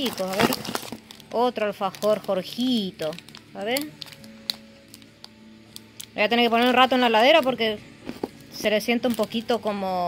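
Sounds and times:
plastic wrapper crinkling: 0.0 - 9.8.

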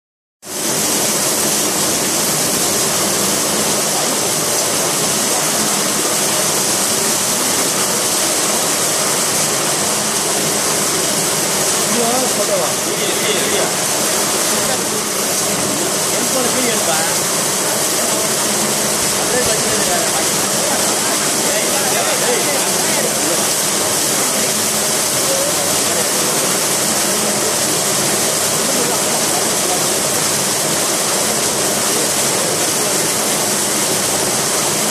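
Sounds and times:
water churning through channel: 0.4 - 34.9
water rushing in cooling tower: 0.4 - 34.9.

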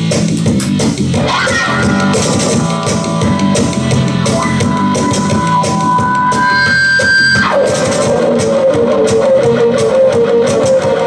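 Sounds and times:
electric guitar lead: 0.0 - 11.0.

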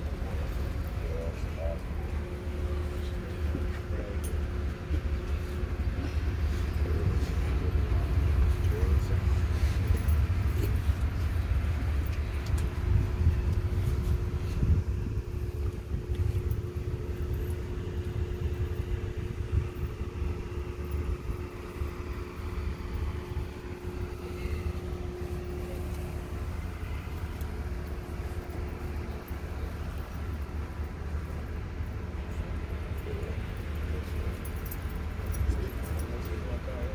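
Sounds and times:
faint steady hum: 0.0 - 36.9
low rumble: 0.0 - 36.9
murmuring voices: 0.0 - 36.9.

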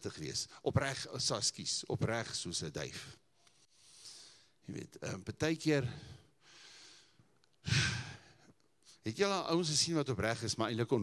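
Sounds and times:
man sighing into microphone: 7.6 - 8.5.

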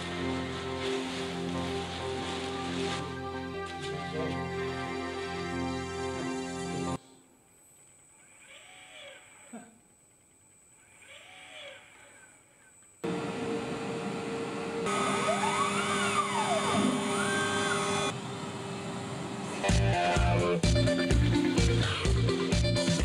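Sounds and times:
motors whining: 10.7 - 20.7
cnc router milling wood: 13.1 - 20.1.

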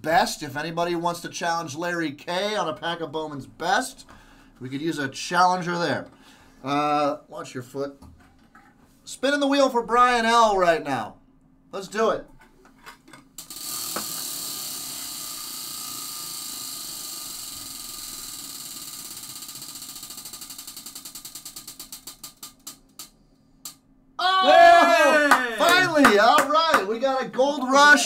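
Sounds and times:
prize wheel clicker ticking: 17.4 - 23.0
loud voice: 24.2 - 28.0.

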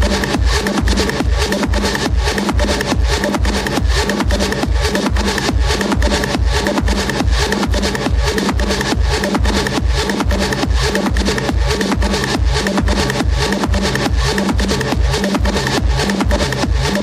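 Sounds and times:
four-on-the-floor kick drum: 0.0 - 17.0
hi-hats ticking: 0.0 - 17.0.

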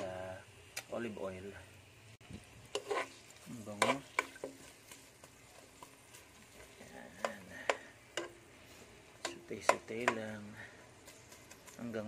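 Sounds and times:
oil sizzling: 0.0 - 12.0
metal spoon scraping a pot: 2.7 - 4.6.

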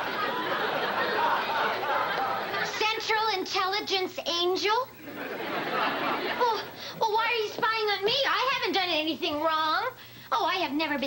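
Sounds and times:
studio audience laughter: 0.0 - 3.0, 5.0 - 6.9.

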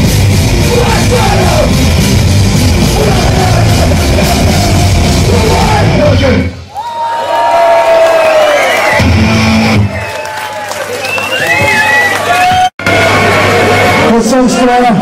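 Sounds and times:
punk rock band playing: 0.0 - 6.7, 9.0 - 10.0
crowd cheering and whooping: 2.6 - 5.8, 6.7 - 14.1.

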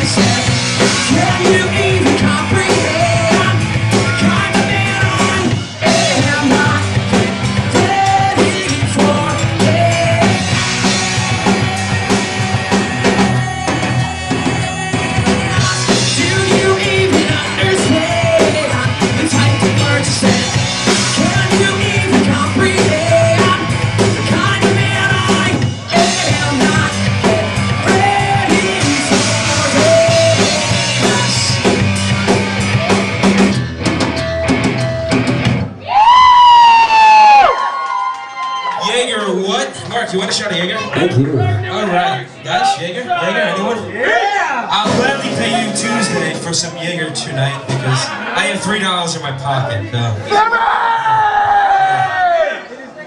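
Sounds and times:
drum kit beat: 0.0 - 37.6, 44.7 - 48.8
electric guitar: 0.0 - 38.8.

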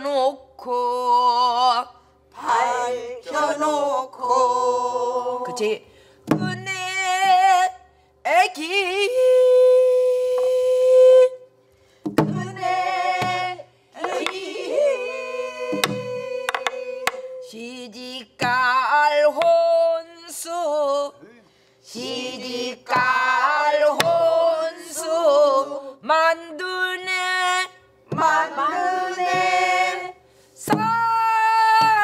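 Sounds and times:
person singing folk song with vibrato: 0.0 - 11.5, 12.1 - 21.2, 21.9 - 32.0
barrel drum strokes: 12.0 - 14.4.

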